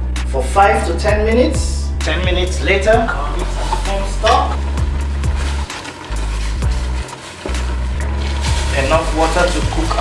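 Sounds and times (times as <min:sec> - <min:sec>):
background music with deep bass: 0:00.0 - 0:10.0.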